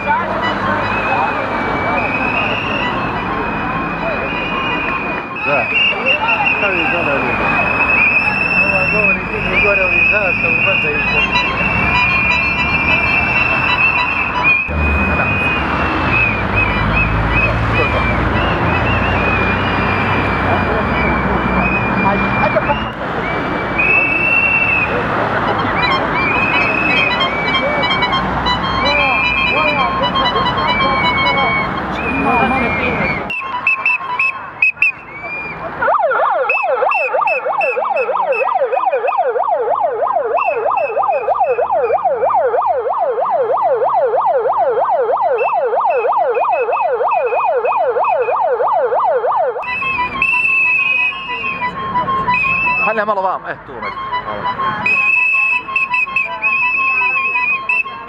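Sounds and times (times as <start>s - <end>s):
protest crowd noise: 0.0s - 58.0s
warbling siren: 0.0s - 58.0s
whistles blowing: 0.4s - 35.7s, 36.4s - 38.5s, 40.4s - 42.0s, 45.4s - 46.1s, 47.2s - 48.4s, 49.6s - 53.0s, 53.8s - 58.0s.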